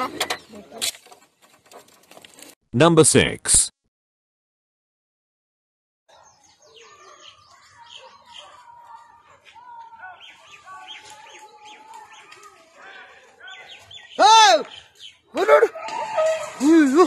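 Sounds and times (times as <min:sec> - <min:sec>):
birds chirping: 0:00.0 - 0:01.6, 0:06.1 - 0:17.0.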